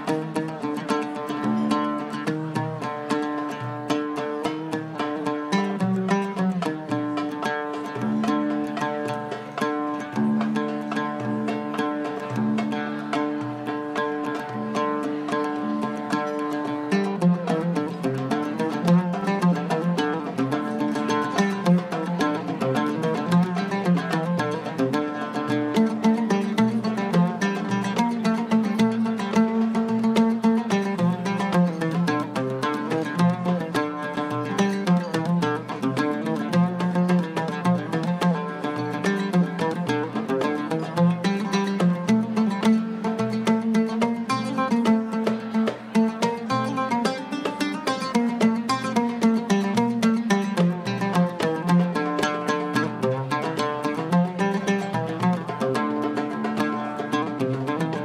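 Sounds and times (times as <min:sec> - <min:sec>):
oud melody of plucked notes: 0:00.0 - 0:58.0.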